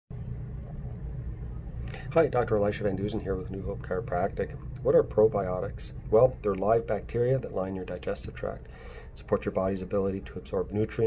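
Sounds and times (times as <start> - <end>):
low background rumble: 0.1 - 11.0
short breath in: 8.7 - 9.2.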